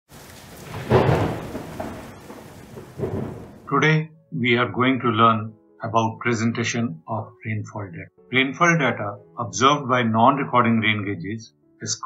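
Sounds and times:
steady rain: 0.1 - 3.7
thunder rolling: 0.1 - 3.8.

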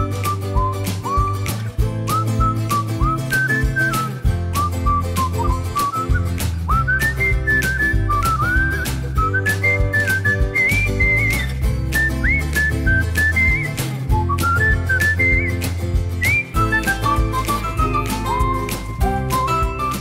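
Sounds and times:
bass line: 0.0 - 20.0
whistled melody: 0.0 - 20.0.

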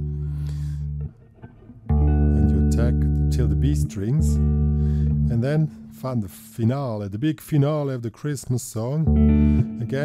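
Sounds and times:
electric guitar notes: 0.0 - 6.6, 9.0 - 10.0.

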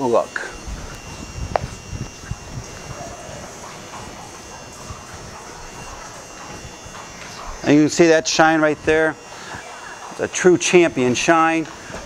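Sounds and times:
electric fan humming: 0.0 - 12.0
soft low thumps: 0.5 - 7.6.

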